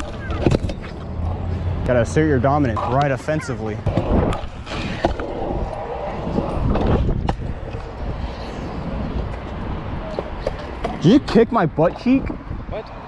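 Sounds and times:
scooter wheels rolling on concrete: 0.0s - 13.0s
wind rumbling on microphone: 3.8s - 13.0s.

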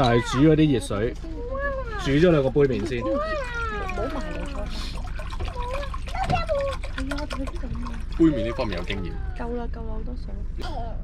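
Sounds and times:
voices talking: 0.0s - 11.0s
water pouring into metal pot: 2.0s - 9.3s.

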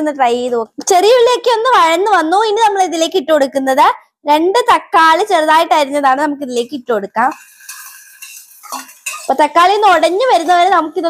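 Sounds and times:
tomatoes sizzling in oil: 7.2s - 11.0s
steel bowl clinking on pot: 7.3s - 10.6s.

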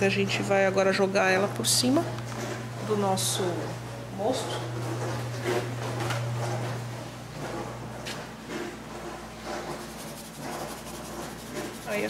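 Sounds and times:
low steady hum: 0.0s - 8.2s.

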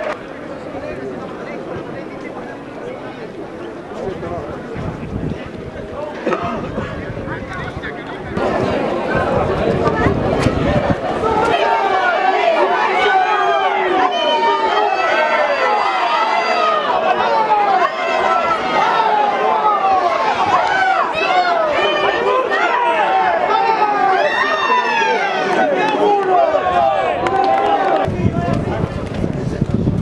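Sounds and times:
crowd chatter and shouts: 0.0s - 30.0s.

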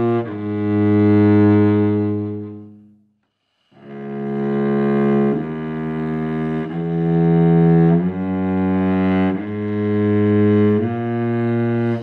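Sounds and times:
cello bowed low note: 0.0s - 3.1s, 3.8s - 12.0s.

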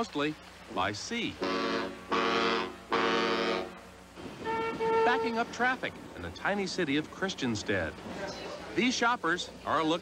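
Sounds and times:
ship's horn blasts: 1.3s - 5.6s.

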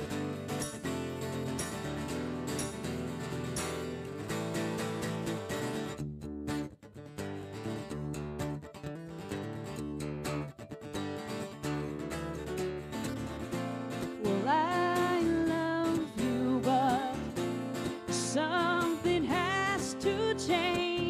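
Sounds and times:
acoustic guitar strumming: 0.0s - 21.0s
woman singing: 14.1s - 21.0s.

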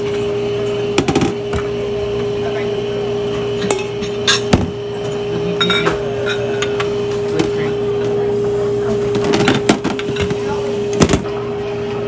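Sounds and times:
steady hum: 0.0s - 12.0s
utensils and dishes clinking: 3.2s - 11.4s.

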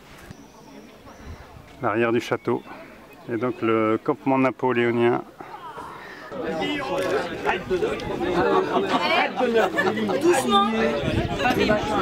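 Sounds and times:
chatter of people: 0.0s - 12.0s.

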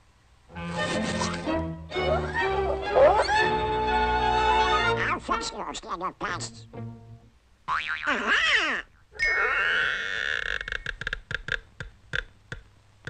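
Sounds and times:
comic orchestral music: 0.5s - 5.6s
garbled quacking cartoon voice: 4.9s - 6.6s, 7.8s - 10.2s
cartoon sound effects: 7.8s - 10.8s.

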